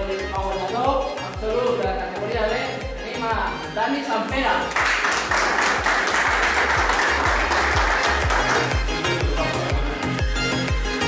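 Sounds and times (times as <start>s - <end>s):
dance music with steady beat: 0.0s - 11.0s
small group applauding: 4.6s - 9.5s.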